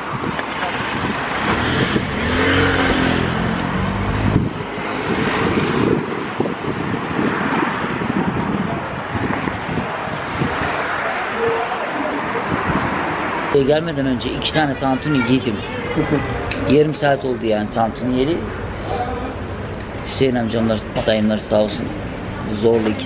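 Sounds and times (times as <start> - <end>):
street traffic noise: 0.0 - 23.0
vehicle engine passing: 0.6 - 14.8.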